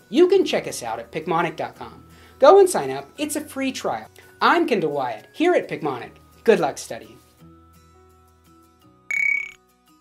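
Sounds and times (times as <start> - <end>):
soft background music: 0.0 - 10.0
electronic chime with rising sweep: 9.1 - 9.6.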